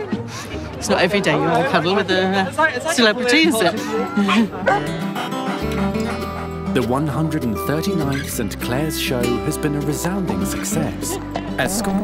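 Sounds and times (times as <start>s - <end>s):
background music with guitar: 3.3s - 12.0s
woman laughing: 3.9s - 5.0s.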